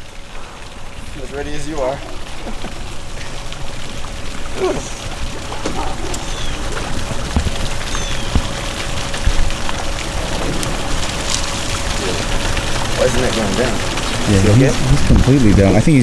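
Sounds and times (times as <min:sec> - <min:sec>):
air bubbles fizzing and popping: 0:00.0 - 0:16.0.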